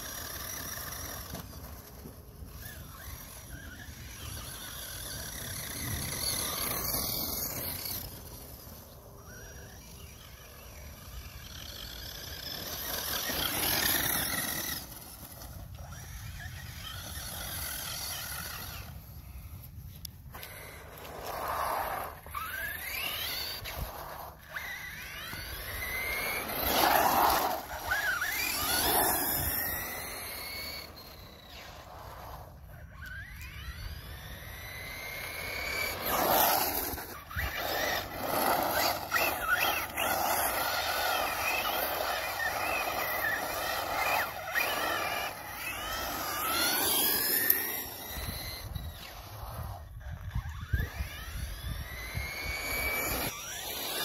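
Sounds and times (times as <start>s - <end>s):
toy car motor whining: 0.0s - 54.0s.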